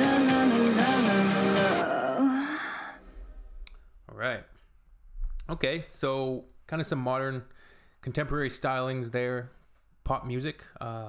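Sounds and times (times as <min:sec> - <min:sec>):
pop song backing music: 0:00.0 - 0:02.6
breathy vocal sound with reverb: 0:00.0 - 0:03.5.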